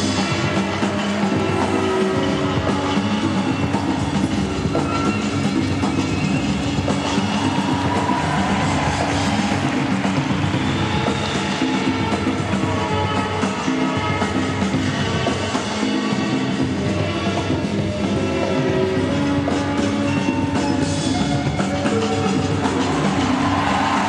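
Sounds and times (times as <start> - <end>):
rhythmic music over sound system: 0.0 - 24.0.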